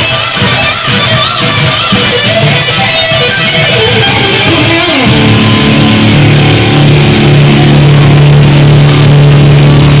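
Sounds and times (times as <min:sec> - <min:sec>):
electric guitar sustained low note: 0:00.0 - 0:10.0.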